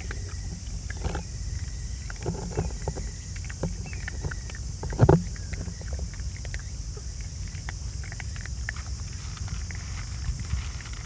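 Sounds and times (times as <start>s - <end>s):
animals crunching dry kibble: 0.0s - 11.0s.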